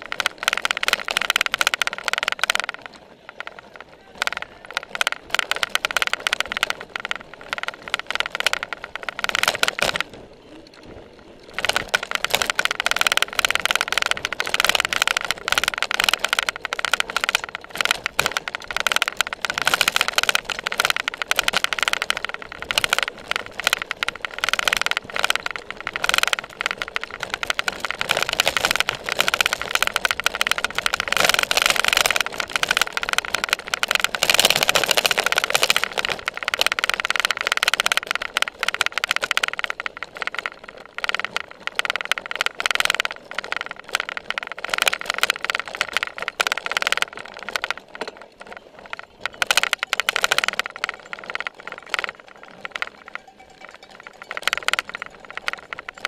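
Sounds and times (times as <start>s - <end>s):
bike rattling and knocking: 0.0s - 56.0s
tyre and wind noise: 0.0s - 56.0s.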